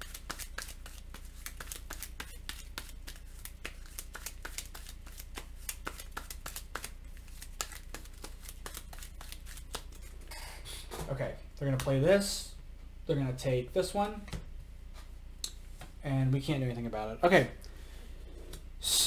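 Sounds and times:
cards and pieces clicking on table: 0.0 - 9.8
low steady hum: 0.0 - 19.0.

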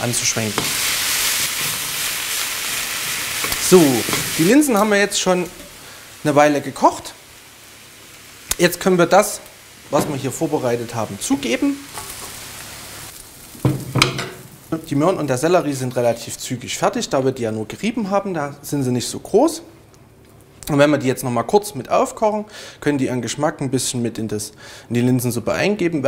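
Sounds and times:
vegetables sizzling in a frying pan: 0.0 - 17.2.

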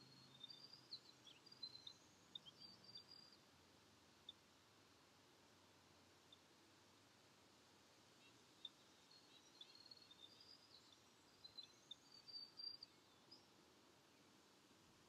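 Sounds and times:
birds chirping: 0.0 - 3.5, 8.2 - 14.5.

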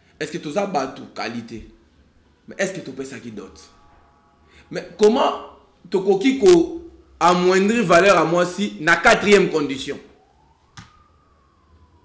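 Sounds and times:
faint rising and falling tone: 1.7 - 12.0.

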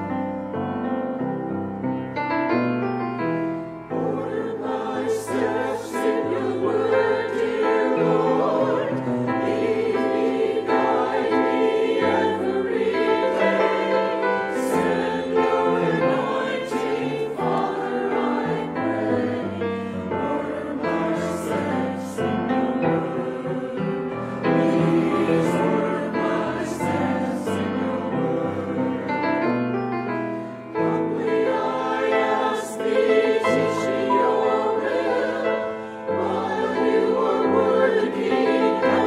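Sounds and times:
piano accompaniment: 0.0 - 39.0
choir singing in parts: 3.5 - 29.8, 30.4 - 39.0.

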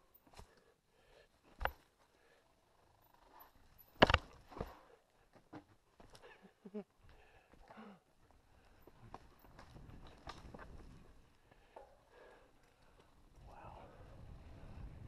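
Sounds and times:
bike knocks and rattles: 3.8 - 4.8.

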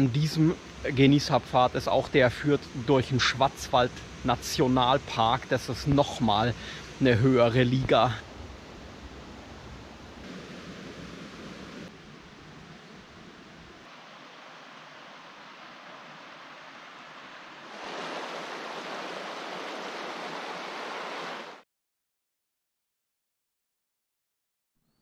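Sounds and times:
rocky brook rushing: 13.8 - 21.6.

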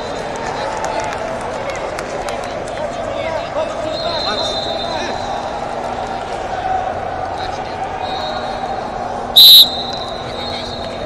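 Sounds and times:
busy sports hall background noise: 0.0 - 11.0
referee's whistle blast: 4.0 - 5.4, 9.4 - 11.0.

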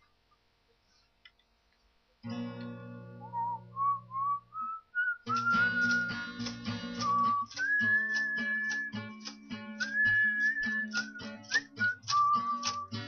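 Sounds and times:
acoustic guitar strumming: 2.2 - 13.0
person whistling a melody: 3.2 - 13.0.

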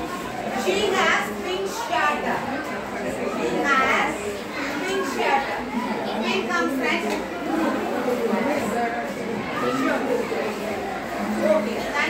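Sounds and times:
women chattering: 0.0 - 12.0.

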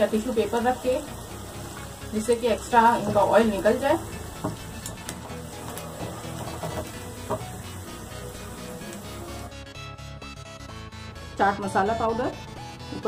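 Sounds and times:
food sizzling in hot oil: 0.0 - 9.6
soft background music: 0.0 - 13.0.

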